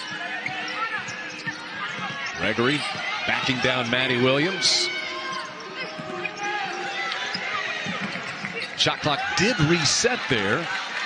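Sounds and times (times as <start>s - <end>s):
murmur of arena crowd: 0.0s - 11.0s.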